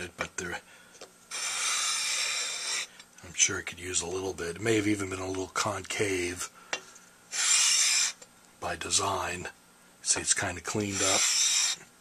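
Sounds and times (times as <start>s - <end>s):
metal scraping on abrasive paper: 1.3s - 3.0s, 7.3s - 8.2s, 10.8s - 11.9s.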